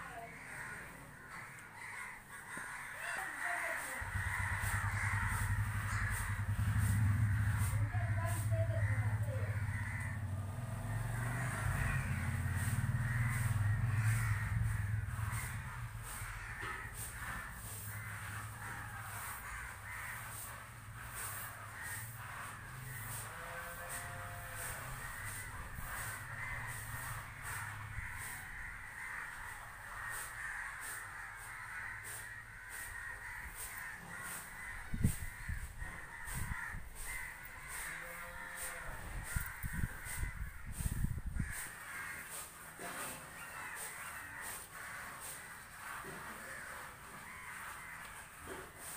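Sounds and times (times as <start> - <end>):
crows cawing: 0.0 - 48.9.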